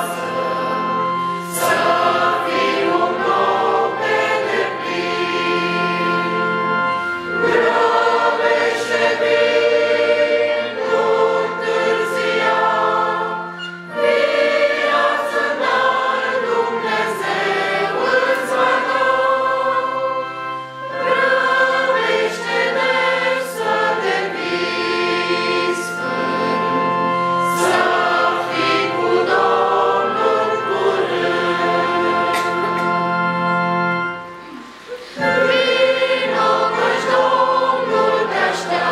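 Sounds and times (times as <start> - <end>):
congregation singing a hymn: 0.0 - 38.9.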